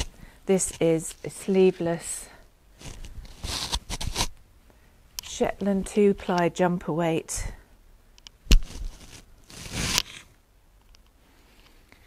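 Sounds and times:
wool garment rustling: 0.0s - 4.3s, 8.6s - 10.2s.

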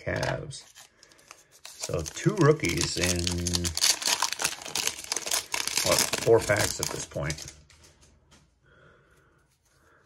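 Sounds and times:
foil wrapper crinkling: 0.0s - 7.7s
foil pack torn open: 0.7s - 7.5s.

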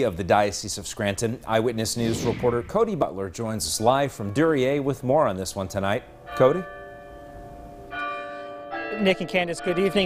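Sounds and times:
church bells ringing: 6.2s - 10.0s.

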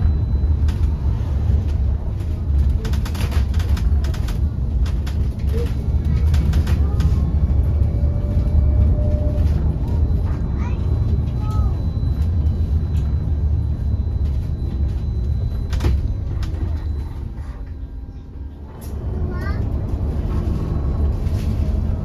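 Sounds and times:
bus cabin low rumble: 0.0s - 22.0s.

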